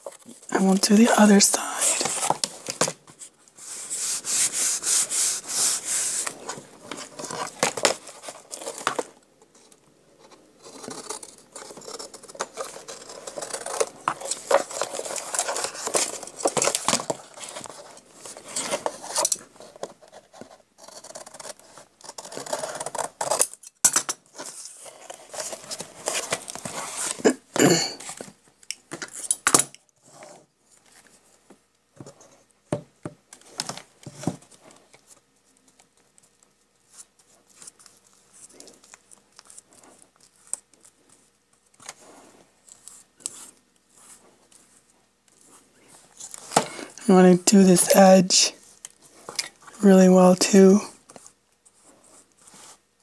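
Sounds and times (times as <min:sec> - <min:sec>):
paper rustling: 0:00.0 - 0:23.4, 0:24.3 - 0:27.4
hands smoothing paper: 0:03.6 - 0:06.7.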